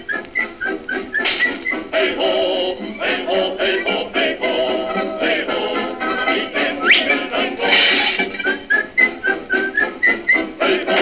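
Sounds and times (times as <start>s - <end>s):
orchestral music: 0.4s - 11.0s
men singing: 1.9s - 8.1s, 10.6s - 11.0s.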